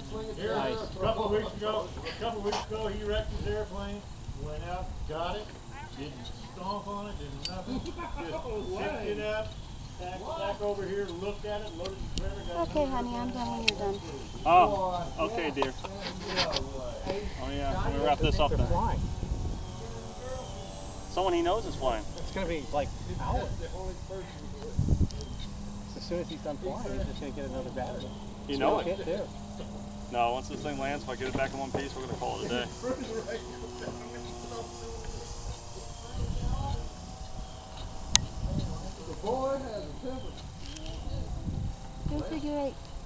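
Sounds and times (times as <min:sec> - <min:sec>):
model airplane motor drone: 0:00.0 - 0:43.0
wind on microphone: 0:00.7 - 0:28.8, 0:29.4 - 0:43.0.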